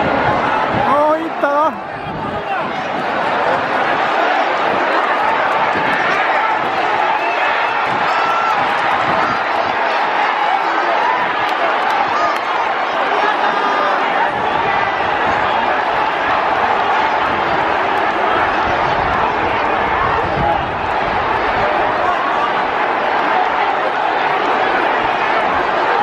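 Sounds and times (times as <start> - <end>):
crowd chattering: 0.0 - 26.0.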